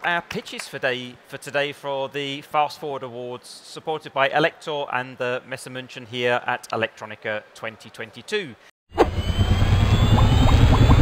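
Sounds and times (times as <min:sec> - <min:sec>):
faint rising whine: 0:09.0 - 0:11.0.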